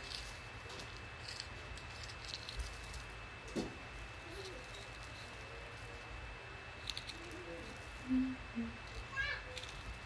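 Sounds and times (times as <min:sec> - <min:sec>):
short low hum: 0:07.5 - 0:09.1.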